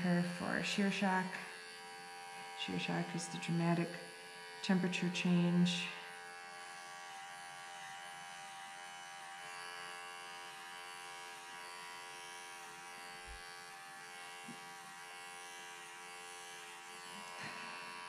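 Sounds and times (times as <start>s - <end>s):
electric hair clippers buzzing: 0.0s - 18.0s.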